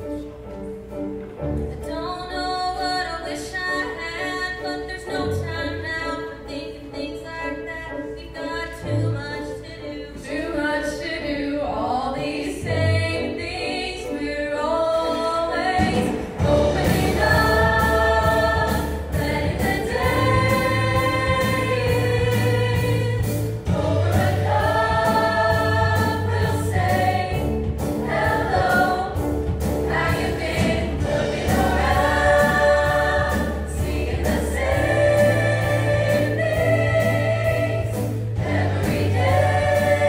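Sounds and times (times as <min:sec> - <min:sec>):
piano: 0:00.0 - 0:40.0
choir singing upbeat song: 0:10.2 - 0:40.0
bass: 0:12.0 - 0:13.6, 0:14.2 - 0:40.0.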